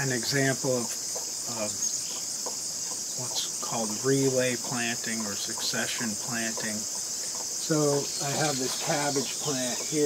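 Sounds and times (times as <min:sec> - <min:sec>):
high-pitched insect chorus: 0:00.0 - 0:10.0.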